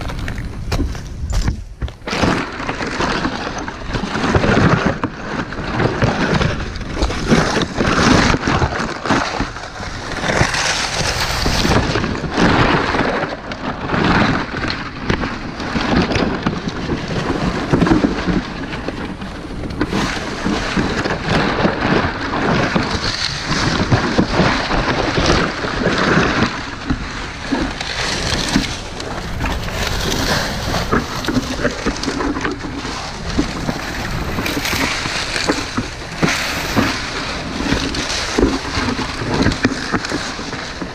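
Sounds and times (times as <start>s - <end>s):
dry palm fronds rustling: 0.0s - 40.9s.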